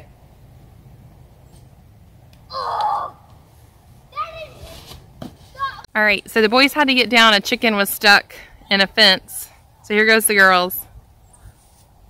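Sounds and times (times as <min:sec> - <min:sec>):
faint outdoor background: 0:00.0 - 0:12.0
child yelling: 0:02.5 - 0:03.2, 0:04.1 - 0:04.8, 0:05.6 - 0:05.9.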